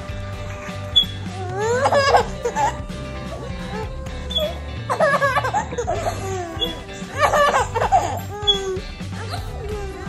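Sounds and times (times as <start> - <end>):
background music: 0.0 - 10.0
baby laughing and squealing: 0.6 - 10.0.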